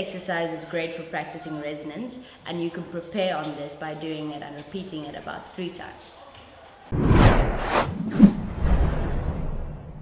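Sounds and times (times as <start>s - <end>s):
swishing whooshes: 6.9s - 10.0s.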